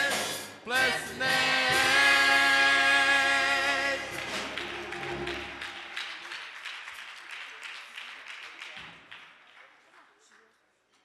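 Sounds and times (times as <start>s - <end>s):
choir singing held chord: 0.0s - 5.6s
congregation clapping: 3.8s - 10.7s.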